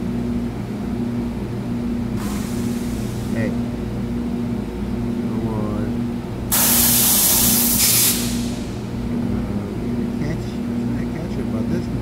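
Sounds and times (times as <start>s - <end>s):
steady low hum: 0.0s - 12.0s
loud hiss: 2.2s - 3.4s, 6.5s - 8.8s.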